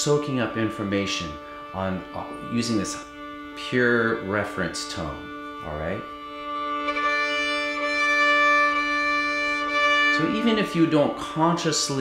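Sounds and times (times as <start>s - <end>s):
fiddle bowing long note: 0.0s - 12.0s.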